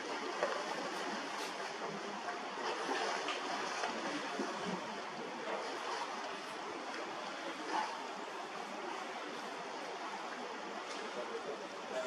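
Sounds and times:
choppy sea water rushing: 0.0 - 12.0
wind: 0.0 - 12.0.

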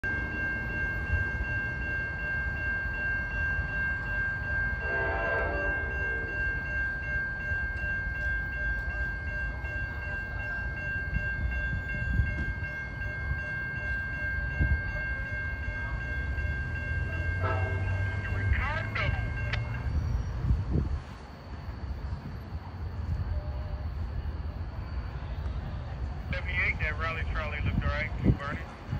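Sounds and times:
high-pitched whine: 0.0 - 9.8
locomotive engine rumble: 0.0 - 28.9
train horn blasts: 4.8 - 6.5, 17.4 - 19.6.

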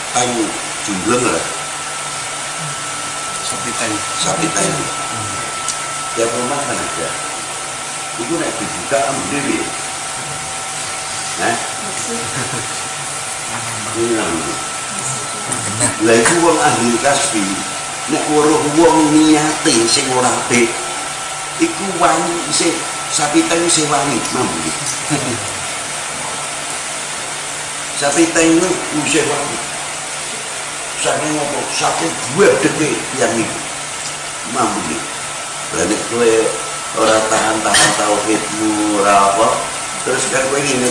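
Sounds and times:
loud steady hiss: 0.0 - 40.9
man talking: 0.1 - 1.6, 3.4 - 7.4, 8.2 - 10.4, 11.3 - 21.0, 21.6 - 25.6, 28.0 - 29.7, 31.0 - 33.7, 34.4 - 40.9
man speaking into a microphone: 0.2 - 1.6, 3.4 - 5.5, 6.2 - 7.2, 8.2 - 9.8, 13.6 - 14.7, 15.5 - 20.8, 21.6 - 25.5, 28.0 - 29.6, 31.0 - 33.7, 35.7 - 40.9.

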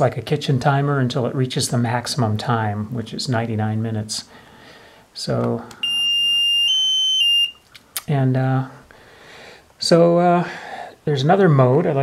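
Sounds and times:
timer buzzer high beep: 5.8 - 7.6.

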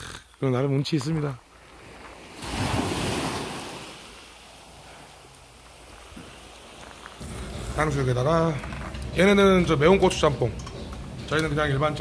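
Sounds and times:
wind: 0.0 - 12.0
small waves washing on shore: 1.4 - 7.9.

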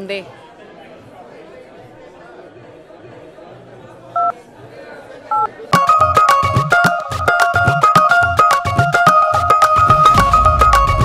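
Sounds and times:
low crowd chatter: 0.0 - 11.0
loud music with heavy beat: 6.4 - 11.0.

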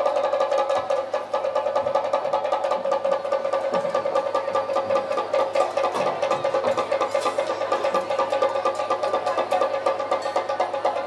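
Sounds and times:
rapid drumbeats: 0.0 - 11.0.

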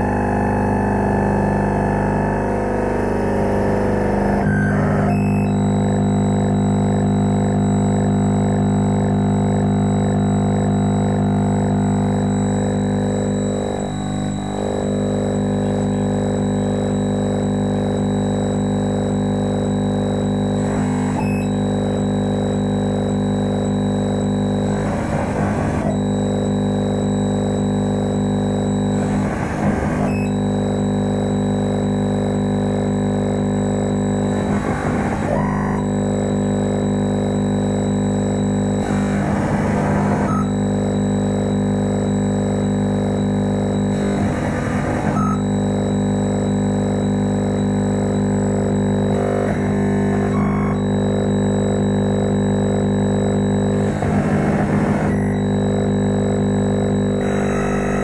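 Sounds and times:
electronic drone of held tones: 0.0 - 58.0.

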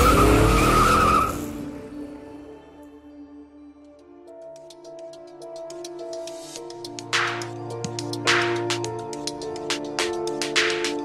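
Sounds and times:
car engine: 0.0 - 1.8
car tyres squealing: 0.0 - 1.8
soft music: 0.0 - 11.0.

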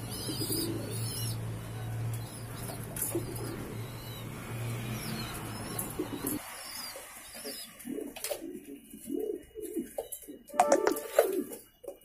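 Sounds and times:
pigeons cooing: 0.0 - 11.9.

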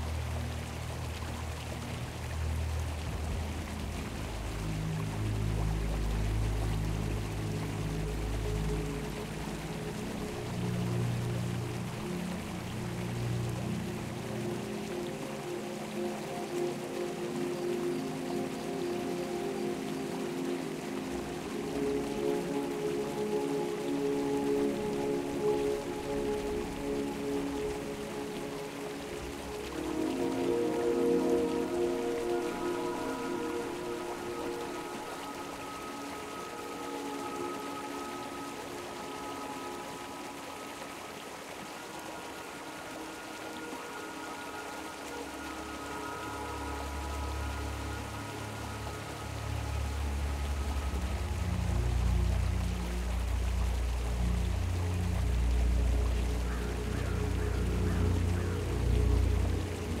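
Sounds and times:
flowing stream: 0.0 - 60.0
soft ambient music: 0.0 - 60.0.

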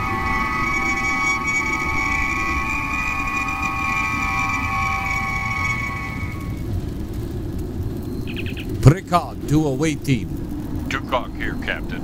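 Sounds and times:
steady high tones chord: 0.0 - 6.7
low rumble: 0.0 - 12.0.

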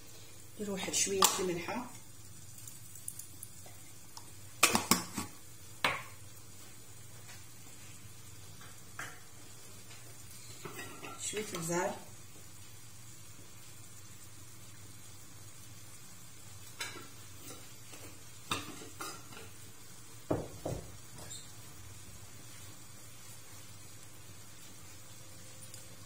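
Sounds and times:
faint steady hum: 0.0 - 20.3.

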